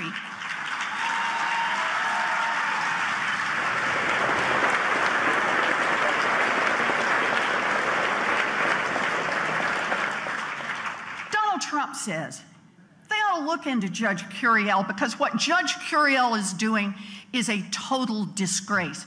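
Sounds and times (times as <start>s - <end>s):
audience applauding: 0.0s - 11.4s.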